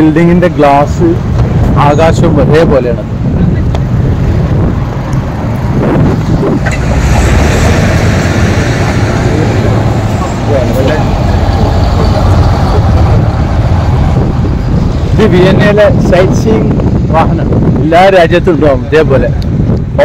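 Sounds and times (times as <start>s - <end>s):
low traffic rumble: 0.0s - 20.0s
bus driving past: 4.0s - 15.2s.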